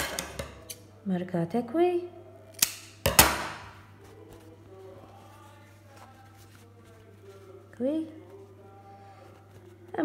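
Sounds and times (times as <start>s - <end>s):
fabric handling: 3.8s - 10.0s.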